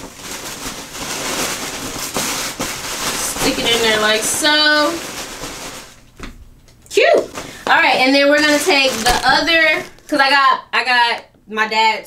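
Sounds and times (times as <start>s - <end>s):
tissue paper rustling and crinkling: 0.0s - 6.0s, 7.0s - 10.2s.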